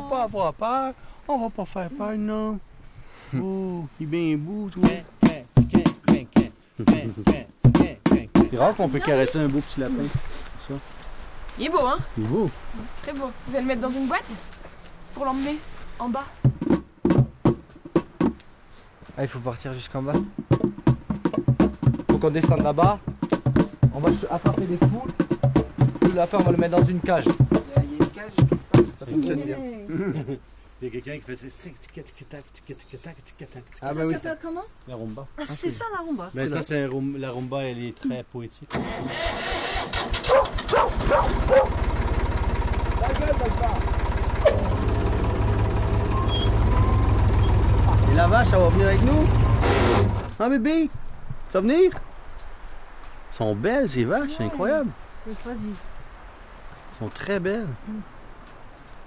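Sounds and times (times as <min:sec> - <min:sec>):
short sharp knocks: 0:04.9 - 0:08.6, 0:16.4 - 0:18.4, 0:20.2 - 0:29.0
engine idling: 0:38.8 - 0:50.3.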